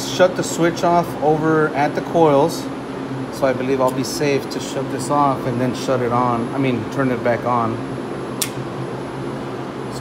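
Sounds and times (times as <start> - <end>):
low equipment hum: 0.0 - 10.0
circuit breaker snap: 8.4 - 8.6.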